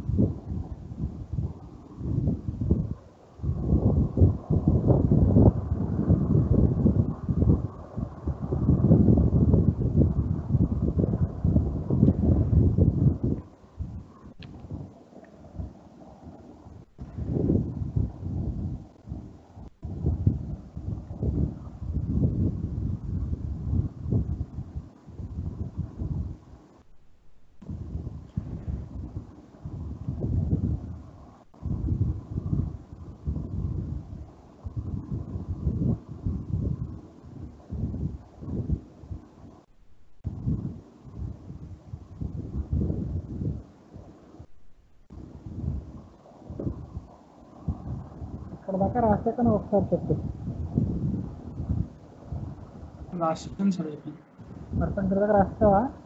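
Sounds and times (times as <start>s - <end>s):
low rumbling noise: 0.0s - 56.0s.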